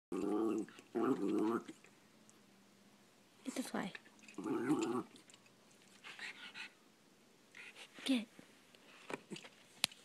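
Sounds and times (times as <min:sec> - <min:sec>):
dog making drawn-out vocal sounds: 0:00.1 - 0:01.9, 0:04.2 - 0:05.4.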